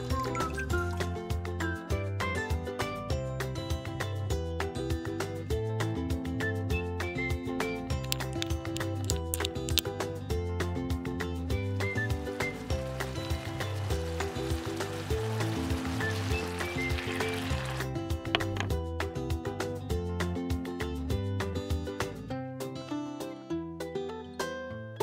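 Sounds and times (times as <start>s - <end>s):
light instrumental music: 0.0s - 25.0s
sauce sizzling in a wok: 12.2s - 17.9s.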